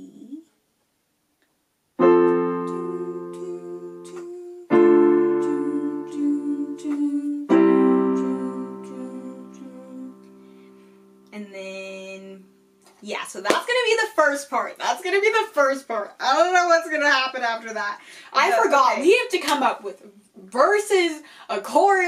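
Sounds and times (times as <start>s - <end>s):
electronic keyboard playing chords: 2.0s - 11.3s.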